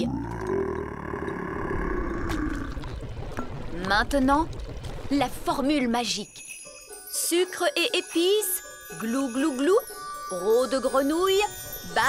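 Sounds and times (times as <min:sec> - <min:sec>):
long deep cartoon burp: 0:00.0 - 0:02.9.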